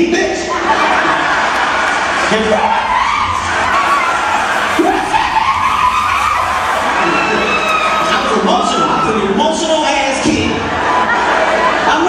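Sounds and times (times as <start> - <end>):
loud crowd noise: 0.0 - 12.0
wavering vocal cries: 2.8 - 9.5.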